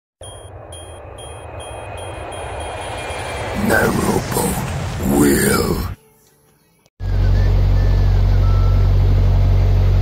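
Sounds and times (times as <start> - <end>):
pulsing high tone: 0.2 - 3.7
low rumble: 0.2 - 6.0.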